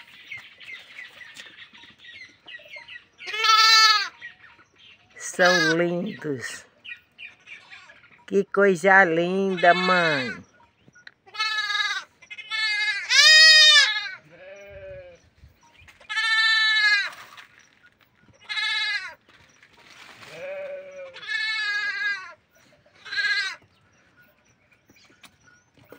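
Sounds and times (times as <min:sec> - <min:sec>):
goat kids bleating: 0:03.2 - 0:04.2, 0:05.2 - 0:06.6, 0:07.5 - 0:08.1, 0:09.3 - 0:10.4, 0:11.2 - 0:15.2, 0:16.0 - 0:17.2, 0:18.4 - 0:19.2, 0:20.2 - 0:22.4, 0:23.0 - 0:23.7.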